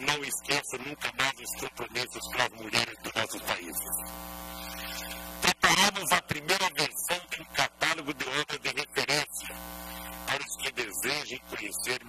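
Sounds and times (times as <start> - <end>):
man speaking: 0.0 - 4.0, 5.4 - 9.6, 10.3 - 12.0
electrical mains hum: 0.0 - 12.0.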